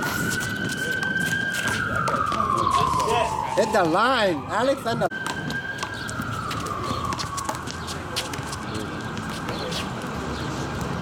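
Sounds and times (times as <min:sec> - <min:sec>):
distant emergency siren: 0:00.0 - 0:10.6
low city rumble: 0:00.0 - 0:11.0.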